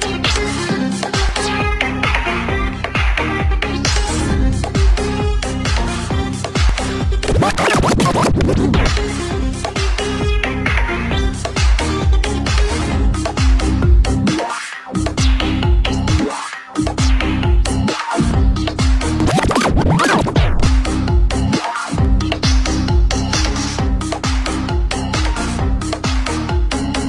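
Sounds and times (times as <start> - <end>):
electronic dance music: 0.0 - 27.0
record scratch pitch sweeps: 7.2 - 9.0, 19.0 - 20.8.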